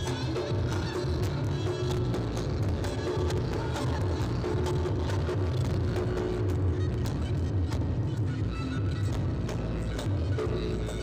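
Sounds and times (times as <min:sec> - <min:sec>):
drums beating steadily: 0:00.0 - 0:11.0.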